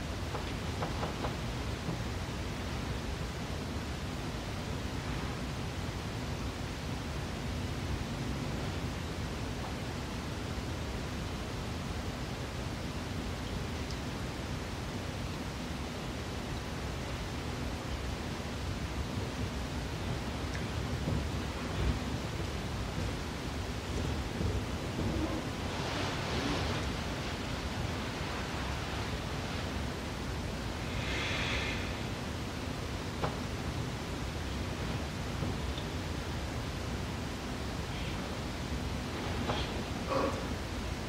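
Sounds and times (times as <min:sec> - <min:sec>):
background hiss and rumble: 0:00.0 - 0:41.0.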